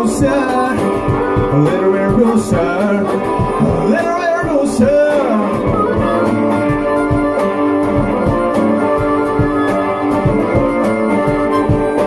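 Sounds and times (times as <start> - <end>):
acoustic guitar: 0.0 - 12.0
harmonica holding long notes: 0.0 - 12.0
steady drum beat: 0.0 - 12.0.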